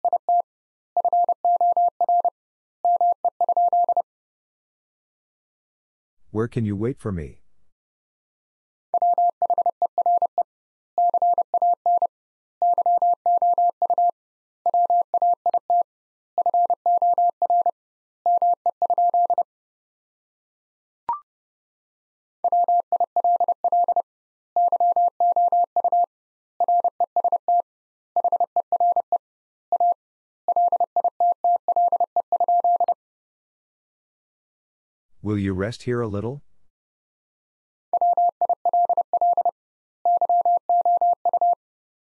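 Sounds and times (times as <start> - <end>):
morse code tone beeping: 29.8 - 33.0, 38.0 - 39.5, 40.1 - 41.6.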